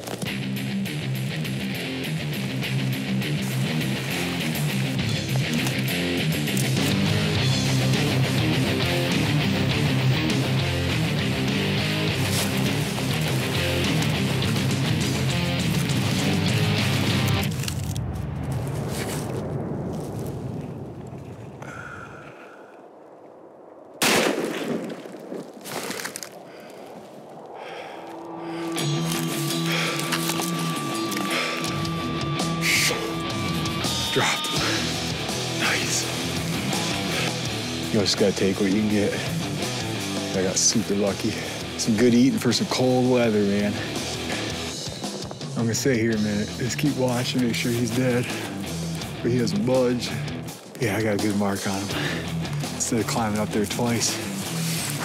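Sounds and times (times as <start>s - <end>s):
guitar background music: 0.1s - 17.7s, 28.8s - 55.0s
rifle shot with echo: 24.0s - 25.4s.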